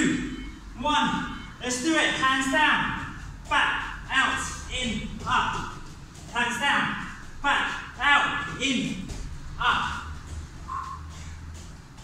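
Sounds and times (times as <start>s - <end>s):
low hum: 0.0s - 12.0s
soft landing on foam mats: 5.0s - 12.0s.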